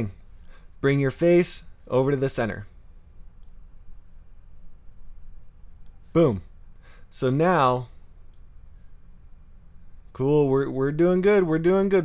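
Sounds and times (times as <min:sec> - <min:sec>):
faint low hum: 0:00.0 - 0:12.0
computer mouse click: 0:03.3 - 0:03.6.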